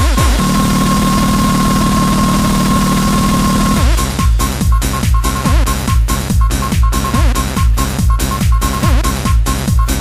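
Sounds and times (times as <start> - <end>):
high-pitched synth tone: 0.0 - 4.2
buzzing low synth drone: 0.0 - 8.0.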